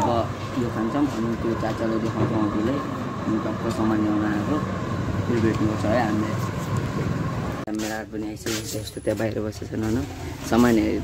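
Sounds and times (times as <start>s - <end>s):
people talking: 0.0s - 6.5s, 7.7s - 11.0s.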